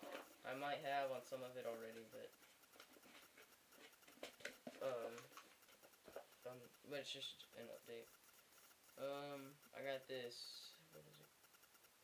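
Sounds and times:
person speaking: 0.0s - 2.8s, 4.4s - 8.2s, 8.9s - 11.4s
faint ticks: 0.0s - 12.0s.

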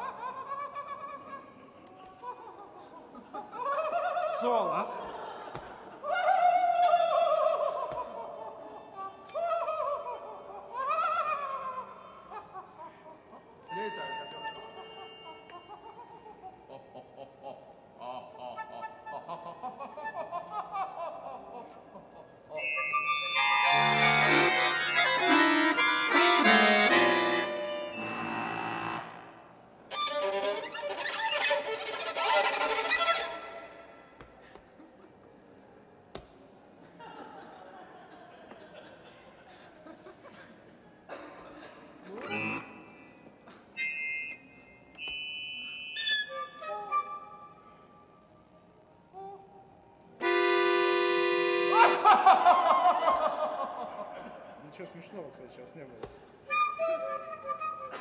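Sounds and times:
violin bayan and flute trio: 42.2s - 43.1s, 56.5s - 58.0s.

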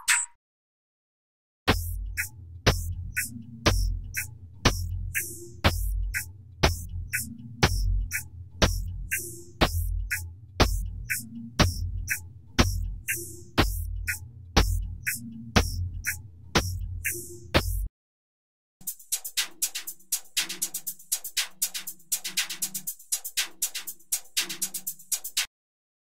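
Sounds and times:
electronic drum loop: 1.7s - 17.9s, 18.8s - 25.5s.

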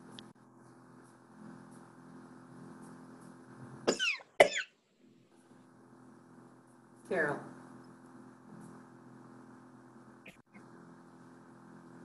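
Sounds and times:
low room hum: 0.0s - 12.0s
person coughing: 3.9s - 4.7s.

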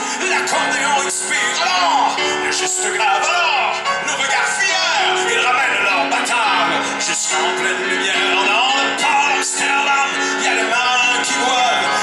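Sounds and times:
instrumental backing: 0.0s - 12.0s
man singing: 0.0s - 12.0s.

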